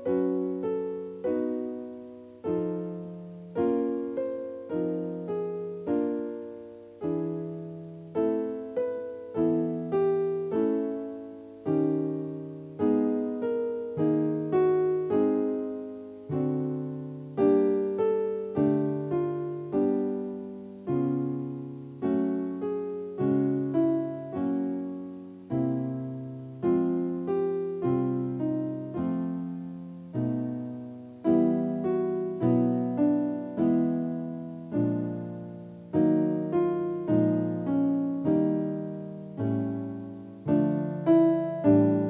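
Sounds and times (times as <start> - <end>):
piano playing chords: 0.0 - 42.0.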